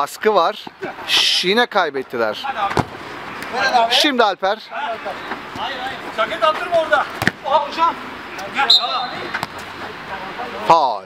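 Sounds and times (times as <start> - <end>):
players calling out: 2.3 - 11.0
ball knock: 7.2 - 7.4
referee's whistle blast: 8.6 - 9.4.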